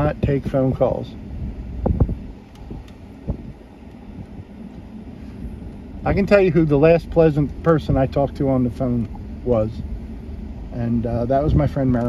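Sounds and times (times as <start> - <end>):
tyres rumbling on bumpy road: 0.0 - 4.9, 5.5 - 12.0
wind noise at open window: 0.0 - 6.3, 11.3 - 12.0.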